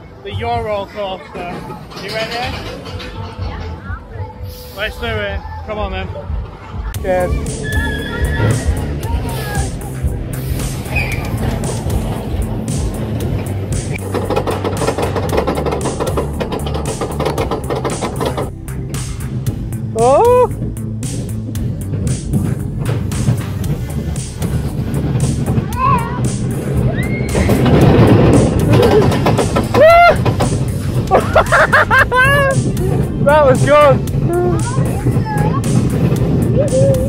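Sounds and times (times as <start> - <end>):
roller coaster rumbling on track: 0.0 - 37.0
fairground music: 1.5 - 37.0
riders whooping and squealing: 7.3 - 9.8, 26.8 - 27.8, 28.6 - 30.4, 36.4 - 37.0.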